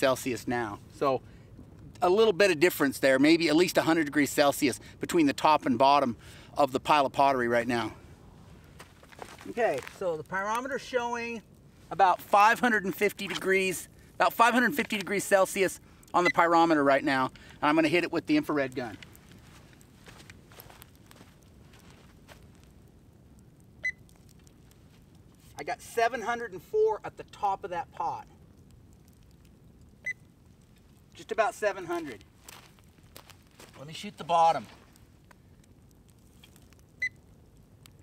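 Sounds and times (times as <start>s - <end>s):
thermometer gun beep: 16.2s - 16.4s, 37.0s - 37.2s
footsteps on sandy dirt: 19.3s - 22.4s, 31.9s - 35.0s.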